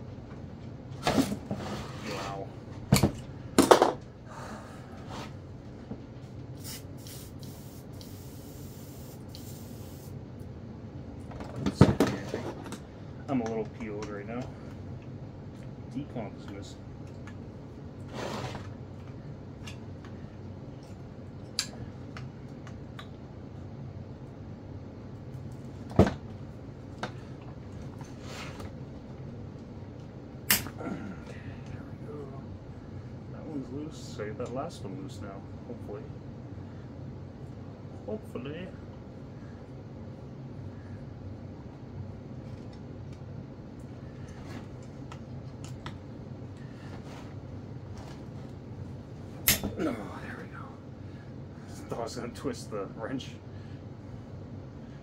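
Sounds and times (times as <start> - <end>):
aerosol can spraying: 6.6 - 10.1.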